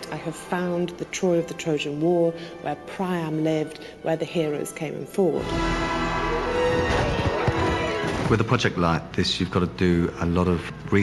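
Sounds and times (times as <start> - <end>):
dramatic film music: 0.0 - 11.0.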